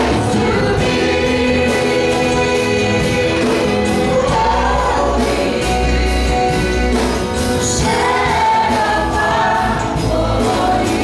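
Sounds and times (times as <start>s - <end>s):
bass guitar: 0.0s - 11.0s
voices singing together: 0.0s - 11.0s.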